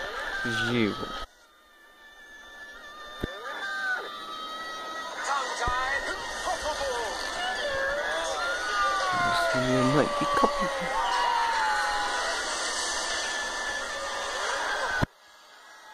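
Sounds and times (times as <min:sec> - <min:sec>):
voices from tv: 0:00.0 - 0:01.3, 0:03.2 - 0:15.1
film music from tv speaker: 0:00.0 - 0:15.9.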